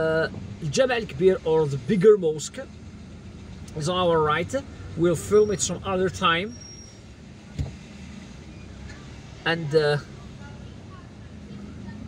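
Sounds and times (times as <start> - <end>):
car engine rumble: 0.0 - 12.0
traffic: 0.0 - 12.0
brief thump: 7.5 - 7.8.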